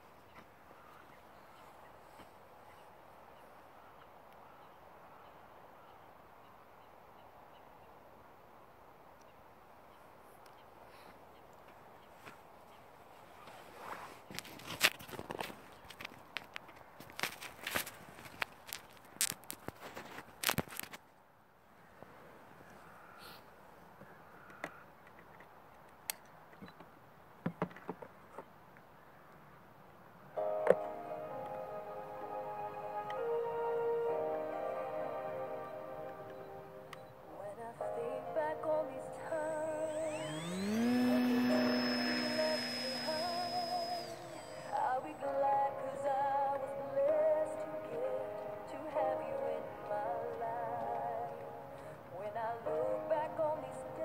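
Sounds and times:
music with singing: 30.4s - 40.2s, 42.0s - 54.0s
model airplane motor revving: 39.2s - 45.2s.

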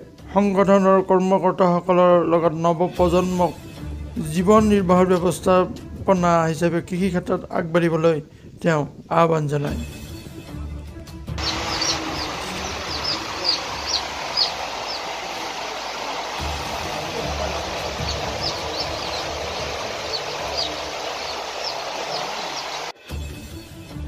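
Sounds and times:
chicks peeping: 11.4s - 22.9s
steady background din: 11.4s - 23.0s.

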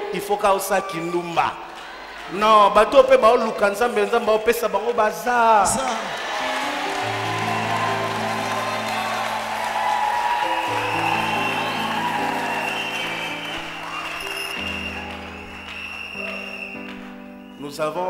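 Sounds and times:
congregation applauding: 0.0s - 18.0s.

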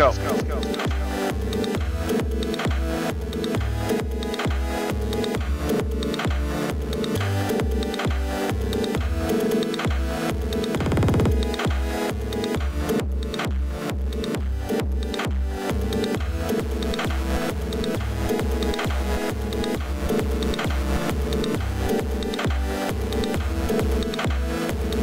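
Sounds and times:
bass drum beat: 4.4s - 25.0s
bleeping synth notes: 10.7s - 11.7s.

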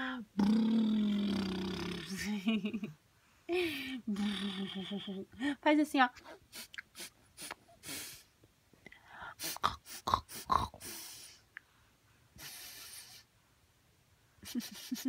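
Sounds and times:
low voiced sound: 0.0s - 2.3s
mouth clicks: 0.4s - 2.1s, 9.4s - 11.6s.

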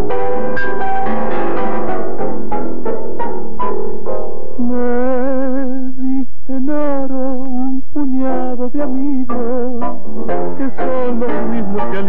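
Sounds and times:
person singing with vibrato: 4.6s - 12.0s.

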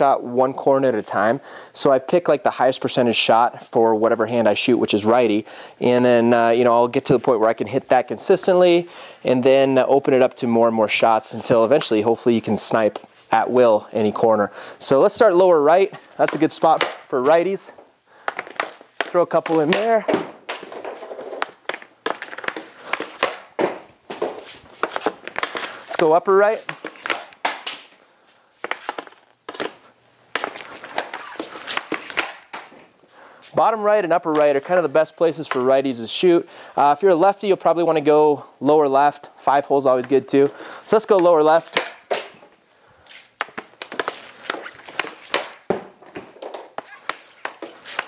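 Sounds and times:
hockey puck shots clacking: 16.2s - 17.6s, 18.3s - 27.9s, 28.7s - 32.8s, 34.2s - 35.8s, 41.1s - 42.4s, 43.4s - 48.0s.

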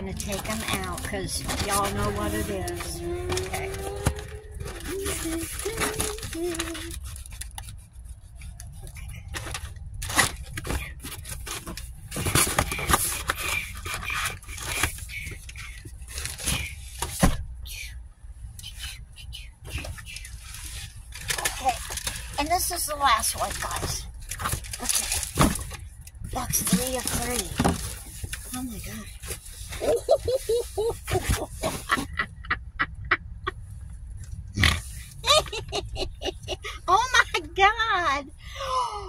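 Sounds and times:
cardboard box and paper rustling: 0.0s - 17.4s, 19.7s - 32.1s
person laughing: 29.8s - 33.6s, 35.1s - 37.6s.

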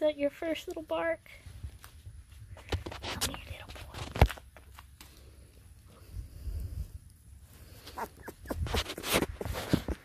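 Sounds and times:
puppy crying: 7.9s - 8.9s.

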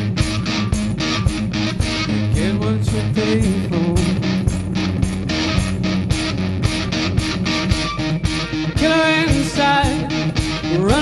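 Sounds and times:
electric guitar strumming: 0.0s - 11.0s.

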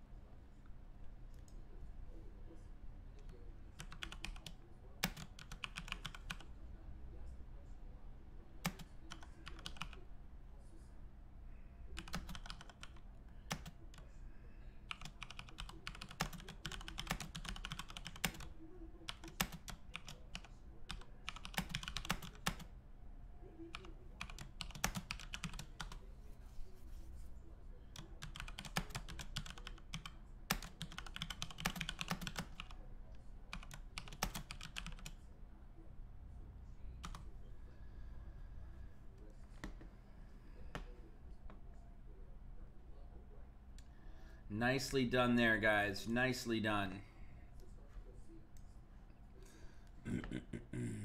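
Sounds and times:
low steady hum: 0.0s - 51.0s
typing on computer keyboard: 3.8s - 6.5s, 8.6s - 10.0s, 12.0s - 14.0s, 14.9s - 18.5s, 19.1s - 22.7s, 23.7s - 26.0s, 28.0s - 32.8s, 33.5s - 35.2s, 37.0s - 37.2s.

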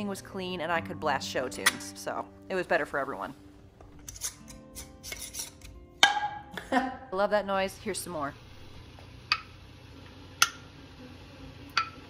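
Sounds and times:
faint background music: 0.0s - 9.4s
metal lid scraping on jar threads: 4.0s - 5.8s.

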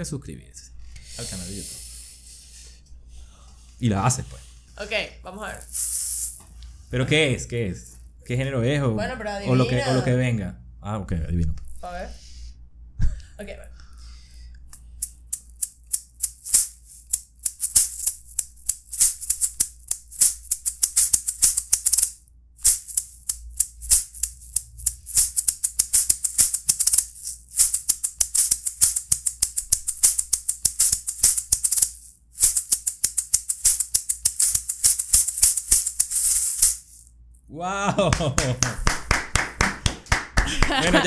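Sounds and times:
maracas shaking: 5.4s - 6.6s, 14.8s - 37.4s.

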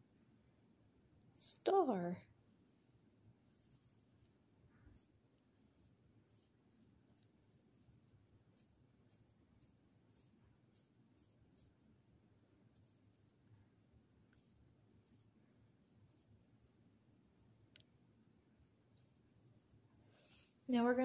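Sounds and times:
brush scratching on paper: 2.4s - 19.8s.

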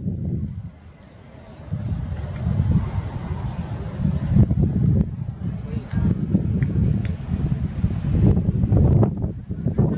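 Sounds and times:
wind buffeting microphone: 0.0s - 9.9s
faint distant voices: 5.1s - 7.5s.

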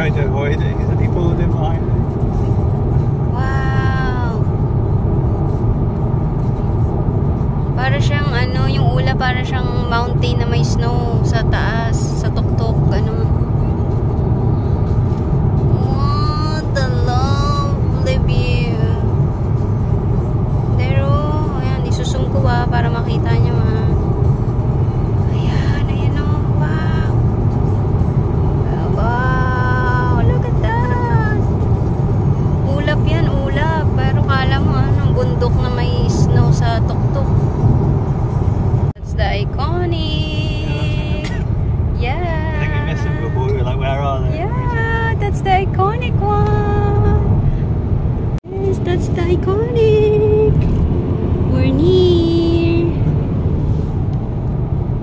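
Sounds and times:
car road and engine noise: 0.0s - 55.0s.

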